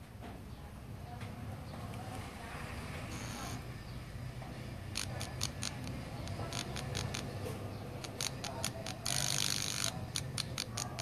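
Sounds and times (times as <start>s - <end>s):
sharp irregular clicks: 4.8s - 11.0s.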